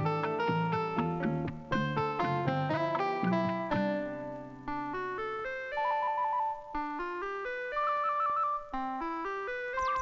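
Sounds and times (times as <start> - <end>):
electronic keyboard music: 4.9 - 10.0.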